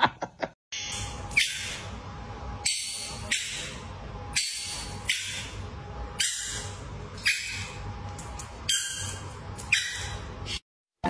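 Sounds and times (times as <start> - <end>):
dog giving squawky calls: 6.2 - 7.8, 8.6 - 10.3.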